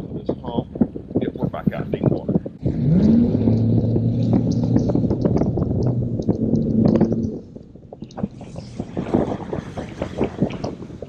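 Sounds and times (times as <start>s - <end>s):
wind rushing: 0.0s - 11.0s.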